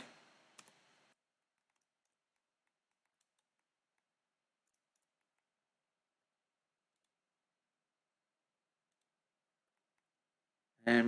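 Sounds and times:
computer mouse clicks: 0.0 - 0.9, 1.5 - 5.6, 8.8 - 10.2.

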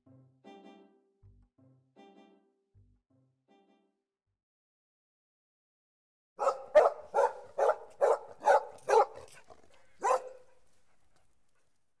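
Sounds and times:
dog barking: 6.4 - 10.6.

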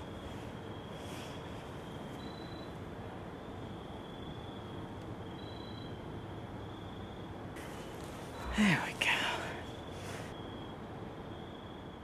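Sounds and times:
person whispering: 8.3 - 10.3.

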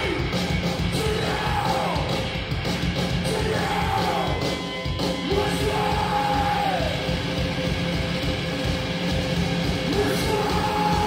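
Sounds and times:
heavy distorted guitars: 0.0 - 11.0
pounding drums: 0.0 - 11.0
shouted vocal: 1.0 - 2.1, 3.2 - 4.4, 5.2 - 7.0, 9.9 - 11.0.

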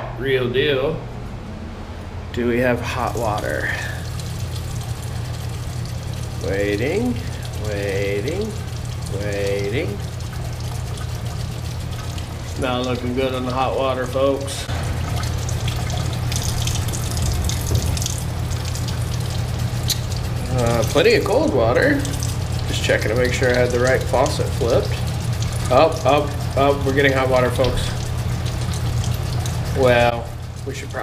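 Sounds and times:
steady low hum: 0.0 - 31.0
faucet water running into basin: 2.7 - 31.0.

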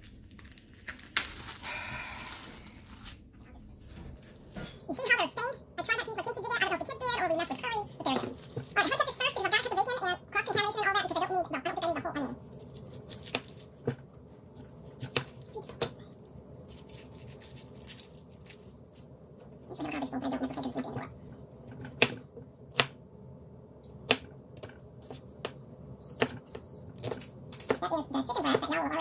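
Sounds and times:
voice: 4.6 - 12.4, 19.7 - 21.2, 27.7 - 29.0
onion being peeled by hand: 7.0 - 9.2, 11.8 - 20.0.

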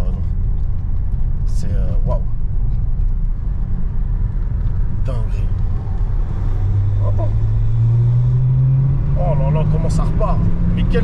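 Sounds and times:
diesel car engine rumble: 0.0 - 11.0
road noise: 0.0 - 11.0.

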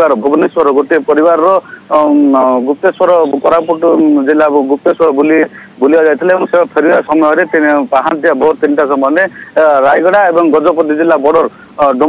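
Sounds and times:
man talking over telephone: 0.0 - 12.0.

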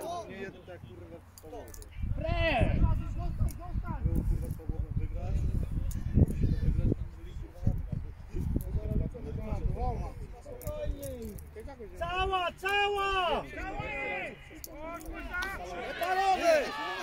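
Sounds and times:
voices shouting on football pitch: 0.0 - 4.1, 9.7 - 17.0.

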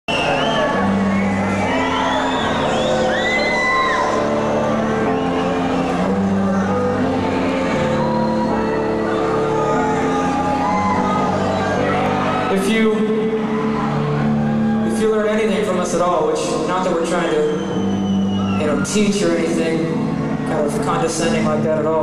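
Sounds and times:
crowd cheering and whistling: 0.1 - 21.6.

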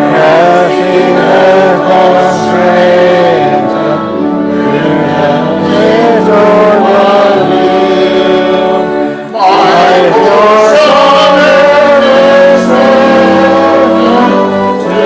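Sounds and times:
congregation singing a hymn: 0.0 - 15.0
sustained instrumental accompaniment: 0.0 - 15.0.

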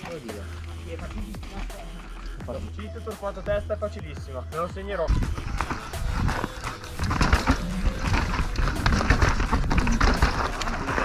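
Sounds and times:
bike knocking and rattling: 5.1 - 11.0
tyres crunching over dirt and stones: 5.1 - 11.0.

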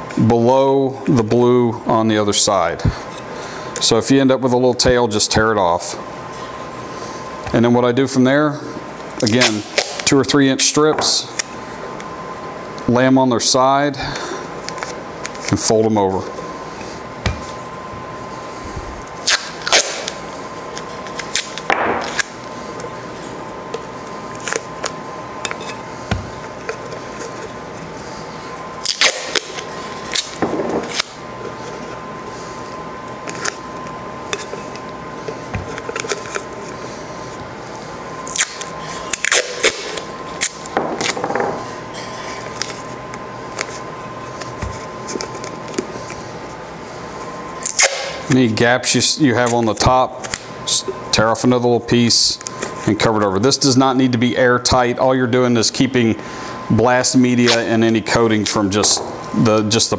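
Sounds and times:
masking tape tearing: 9.2 - 10.2, 19.2 - 22.4, 28.8 - 31.2, 38.2 - 41.2, 47.6 - 48.4
tape rustling: 33.2 - 36.8.

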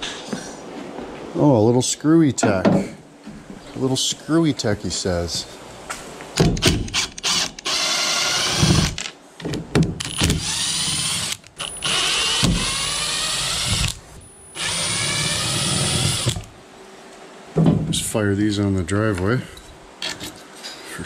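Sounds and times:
impact driver backing out screws: 10.0 - 14.0.

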